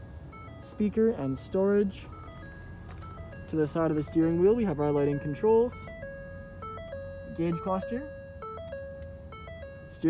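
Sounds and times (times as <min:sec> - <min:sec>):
simple electronic melody: 0:00.0 - 0:10.0.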